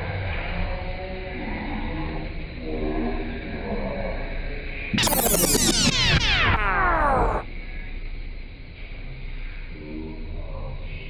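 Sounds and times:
descending synthesized tones: 5.0 - 7.4.

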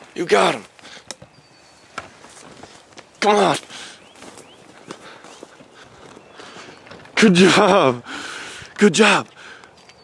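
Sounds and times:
footsteps crunching on stubble: 0.0 - 10.0.

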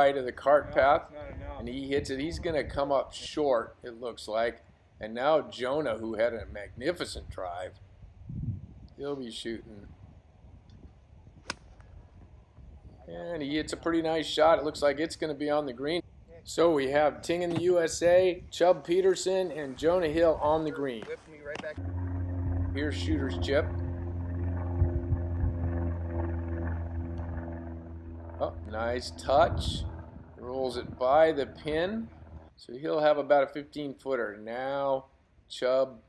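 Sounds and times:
faint low rumble: 4.5 - 32.7
golf club striking ball: 11.4 - 11.9
small engine humming: 21.5 - 32.5.

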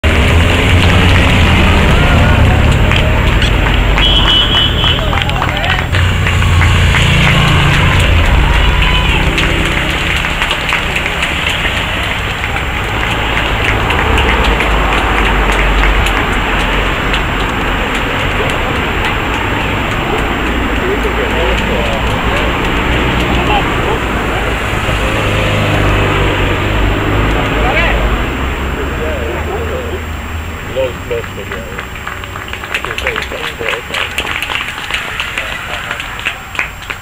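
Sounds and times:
cars driving past: 0.0 - 37.0
spectators' voices: 0.1 - 37.0.

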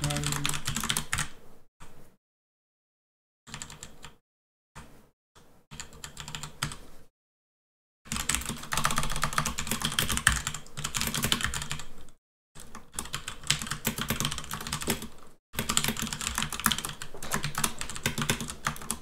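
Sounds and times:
fast typing on keyboard: 0.0 - 1.3, 3.5 - 4.2, 5.7 - 6.8, 8.1 - 19.0.

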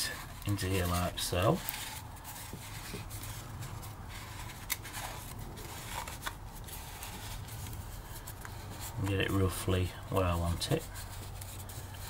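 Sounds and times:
wire scraping on cardboard: 0.0 - 9.4.

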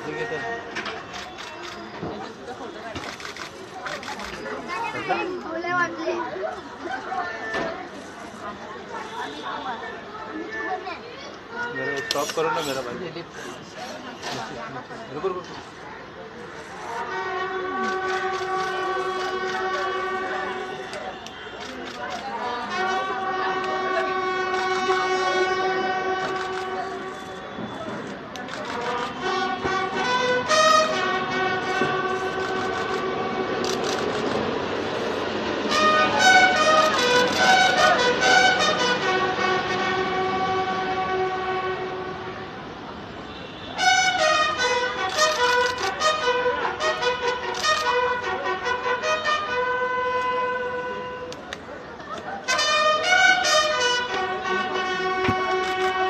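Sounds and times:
bugle long held note: 17.0 - 21.5, 22.5 - 27.4, 28.6 - 34.0, 35.7 - 42.3, 52.5 - 56.0.

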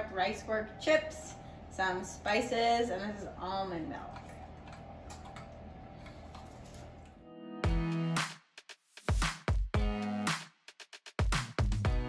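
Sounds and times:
low steady hum: 0.0 - 7.2
electronic music with heavy beat: 7.6 - 12.0.

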